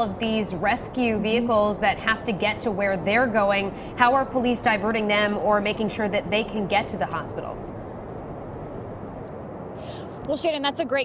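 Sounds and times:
low outdoor rumble and hiss: 0.0 - 11.0.

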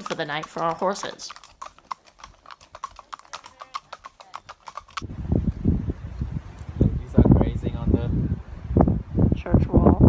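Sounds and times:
horse hooves on pavement: 0.0 - 7.8.

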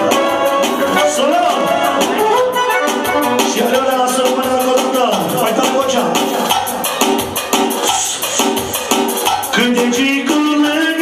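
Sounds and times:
live dance band playing: 0.0 - 11.0
man singing into a microphone: 0.9 - 2.2, 3.2 - 6.2, 9.5 - 11.0.

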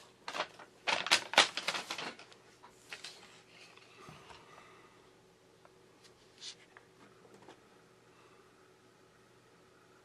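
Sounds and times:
cable rustling: 0.2 - 3.9.

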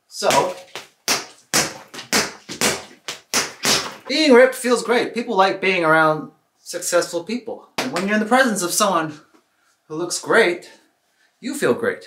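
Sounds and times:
gloves punching a bag: 0.3 - 4.1.

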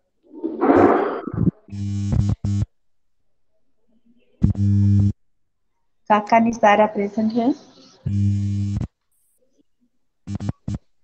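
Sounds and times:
loud electrical buzz: 0.7 - 2.7, 4.4 - 5.2, 8.0 - 8.9, 10.3 - 10.8.

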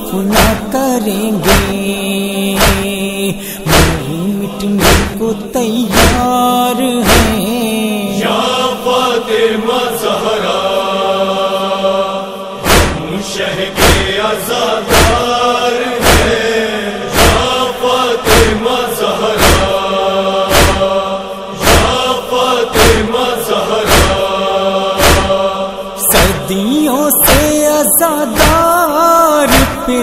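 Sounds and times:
male chorus chanting: 0.0 - 30.0
chest-beating thuds: 1.4 - 1.8, 2.6 - 3.0, 3.7 - 4.1, 4.8 - 5.2, 5.9 - 6.3, 7.0 - 7.4, 12.6 - 13.1, 13.8 - 14.2, 14.9 - 15.3, 16.0 - 16.4, 17.1 - 17.6, 18.3 - 18.6, 19.4 - 19.8, 20.5 - 20.9, 21.6 - 22.1, 22.8 - 23.1, 23.8 - 24.3, 25.0 - 25.4, 27.2 - 27.5, 28.4 - 28.7, 29.5 - 29.8.

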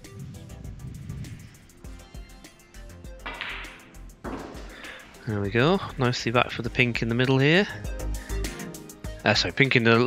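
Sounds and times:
faint background music: 0.0 - 10.0
cue tip striking ball: 3.2 - 4.7
snooker balls clicking: 3.2 - 4.8.

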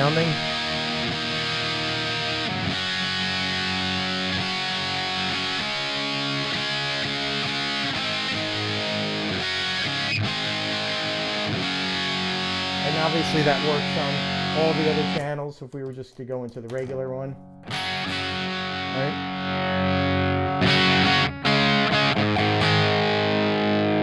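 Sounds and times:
distorted electric guitar chords: 0.0 - 15.3, 17.4 - 24.0.

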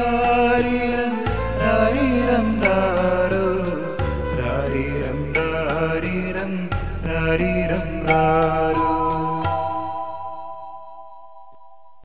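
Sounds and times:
song backing music: 0.0 - 11.7
percussion strikes: 8.0 - 11.6.

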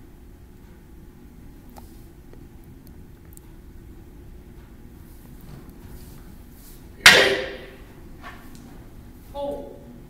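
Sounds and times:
wooden swords clacking: 7.0 - 8.5.

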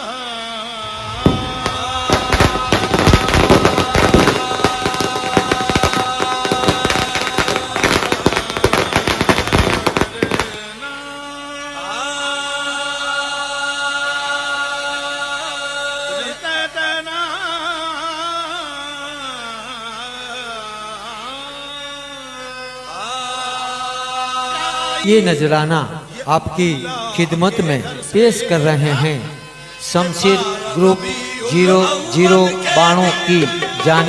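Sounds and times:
chanted devotional singing with music: 0.0 - 34.0
firecrackers bursting: 0.8 - 10.8.

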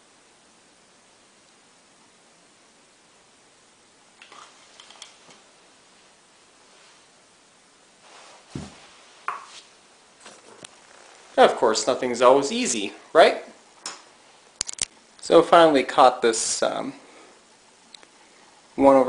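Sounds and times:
plastic containers rustling: 4.2 - 5.4, 8.4 - 11.6
scuffs and light taps: 8.0 - 11.3
thump: 8.5 - 9.4.

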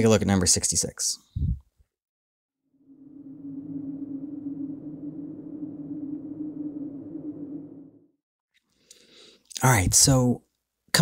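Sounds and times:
low electronic drone: 2.8 - 8.2.

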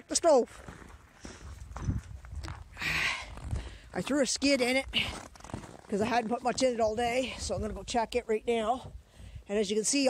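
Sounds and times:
footsteps on packed snow: 0.1 - 8.1.

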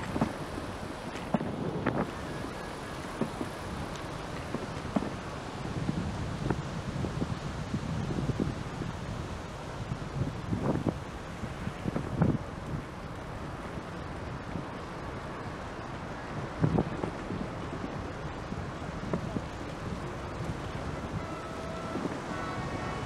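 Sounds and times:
wind buffeting microphone: 0.0 - 23.0.

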